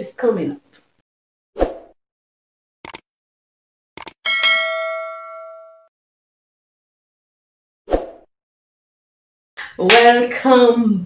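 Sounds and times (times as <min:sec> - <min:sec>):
notification bell ding: 0:04.3 - 0:05.9.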